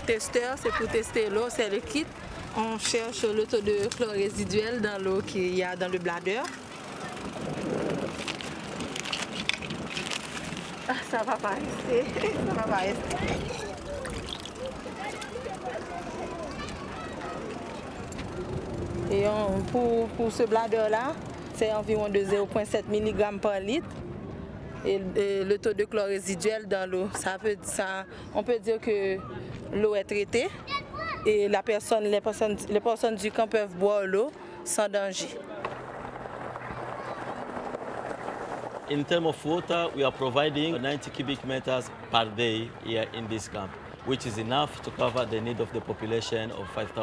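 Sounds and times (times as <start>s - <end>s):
woman talking: 0.0s - 6.6s, 10.9s - 13.5s, 19.1s - 23.9s, 24.9s - 30.6s, 31.3s - 35.4s
children calling out: 0.6s - 1.2s, 13.2s - 18.0s, 30.6s - 31.3s, 36.5s - 37.5s
footsteps on gravel: 7.7s - 12.4s.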